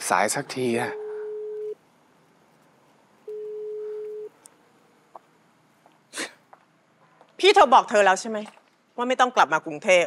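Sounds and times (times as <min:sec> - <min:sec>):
telephone ringback tone beep: 0:00.9 - 0:01.8, 0:03.3 - 0:04.3.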